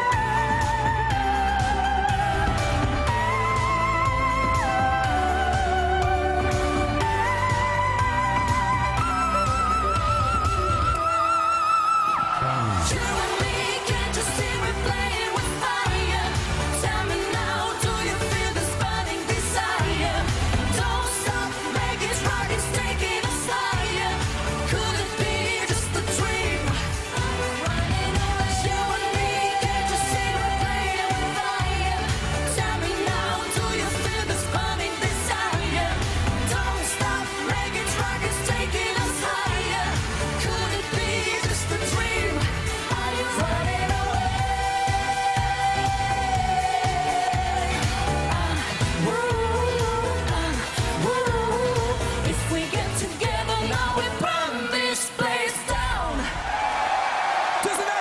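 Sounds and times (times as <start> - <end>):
live pop song with duet vocals: 0.0 - 58.0.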